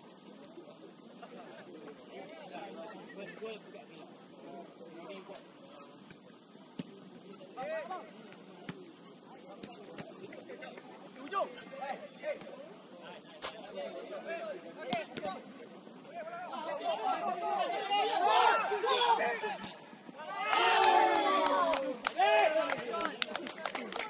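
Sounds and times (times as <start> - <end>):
players shouting: 16.1 - 24.0.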